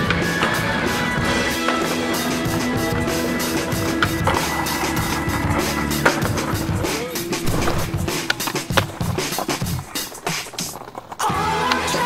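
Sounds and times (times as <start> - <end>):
skateboard clacking on ground: 0.0 - 12.0
skateboard rolling on pavement: 0.0 - 12.0.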